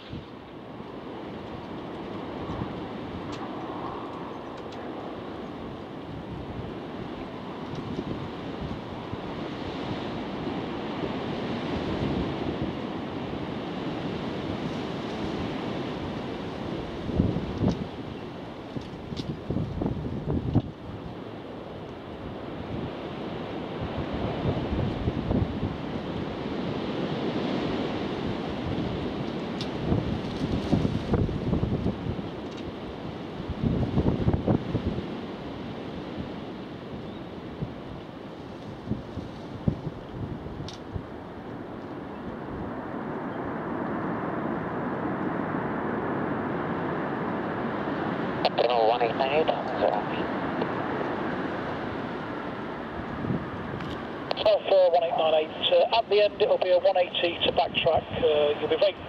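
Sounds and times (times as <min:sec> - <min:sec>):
wind buffeting microphone: 0:00.0 - 0:56.5
jet engines of landing plane: 0:00.0 - 0:59.0.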